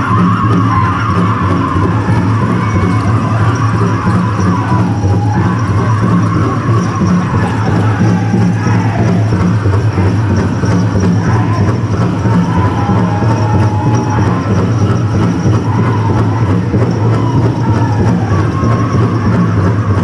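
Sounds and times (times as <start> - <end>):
big drum beating steadily: 0.0 - 20.0
high voices singing in unison: 0.0 - 20.0.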